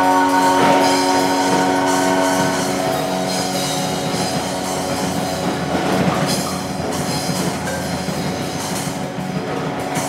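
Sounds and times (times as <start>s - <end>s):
bass guitar: 0.0s - 10.0s
drum kit with cymbals: 0.0s - 10.0s
electric guitars: 0.0s - 10.0s.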